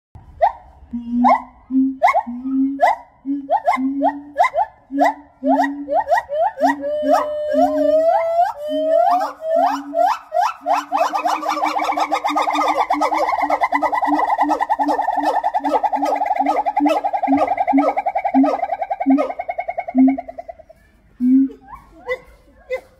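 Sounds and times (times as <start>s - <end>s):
gibbon warbling trill: 0.3s - 22.8s
gibbon whooping call: 0.3s - 22.8s
gibbon hoots: 0.3s - 22.9s.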